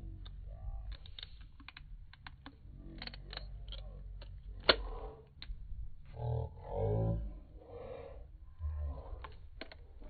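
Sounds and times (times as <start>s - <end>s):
low steady rumble: 0.0s - 10.0s
metal pliers clicking: 0.2s - 5.6s.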